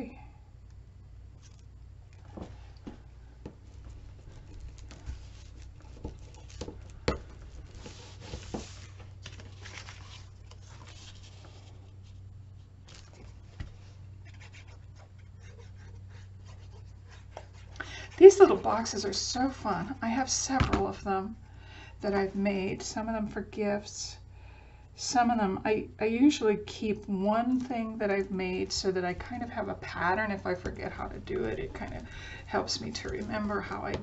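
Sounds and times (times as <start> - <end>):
steady low hum: 0.0 - 34.0
paper rustling and sliding: 3.7 - 12.2.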